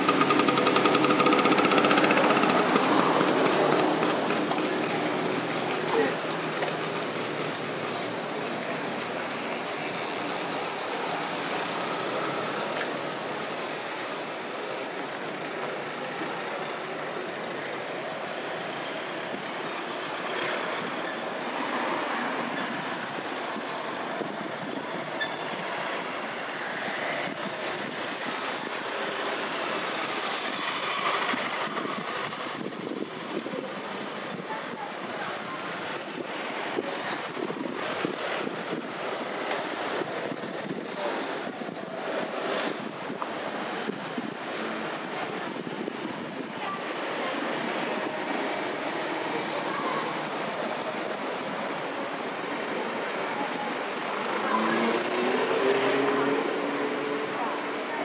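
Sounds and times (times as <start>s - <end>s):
cars driving slowly past: 0.0s - 58.0s.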